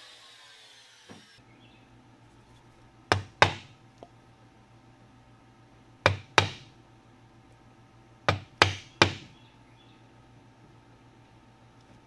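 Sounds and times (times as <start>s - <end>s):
mallet striking wood chisel: 3.1s - 3.7s, 6.0s - 6.7s, 8.3s - 9.3s.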